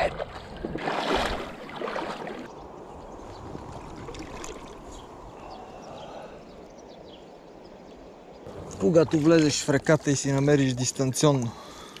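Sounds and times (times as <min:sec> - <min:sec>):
water splashing around legs: 0:00.0 - 0:02.5, 0:03.6 - 0:04.9.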